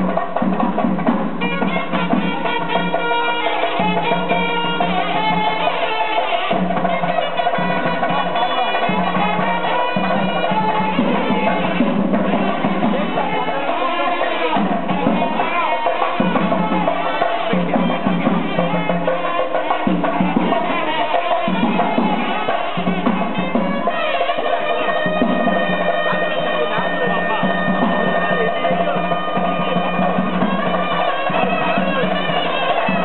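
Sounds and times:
drums beating: 0:00.0 - 0:33.0
reedy wind instrument: 0:00.0 - 0:33.0.

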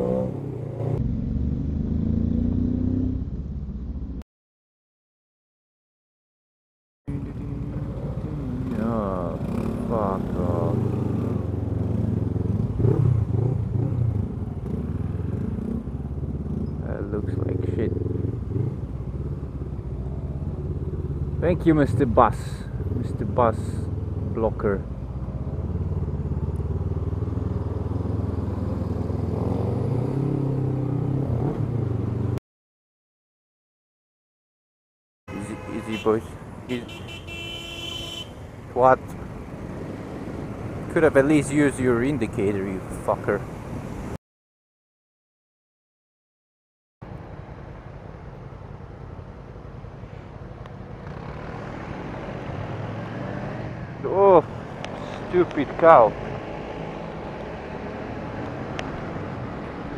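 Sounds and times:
motorcycle engine: 0:00.0 - 0:04.2
motorcycle engine revving: 0:00.0 - 0:04.2, 0:07.1 - 0:21.5, 0:25.1 - 0:32.4, 0:51.0 - 0:59.9
traffic: 0:00.0 - 0:04.2, 0:07.1 - 0:32.4, 0:35.3 - 0:44.2, 0:47.0 - 0:59.9.

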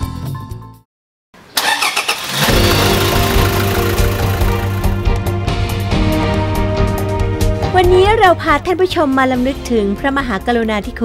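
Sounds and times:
music: 0:00.0 - 0:00.9, 0:02.4 - 0:11.0
car engine starting and running: 0:01.5 - 0:05.8.

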